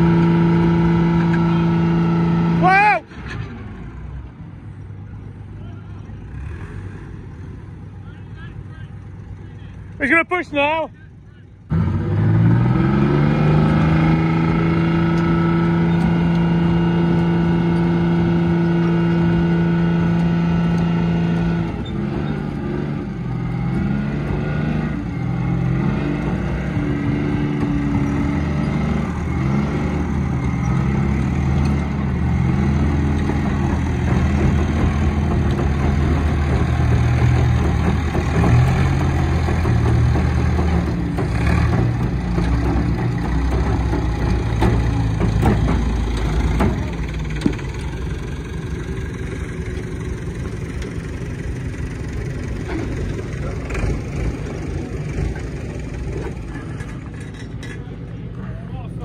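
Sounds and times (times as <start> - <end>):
heavy vehicle engine revving: 0.0 - 4.6, 5.3 - 8.0, 11.6 - 59.0.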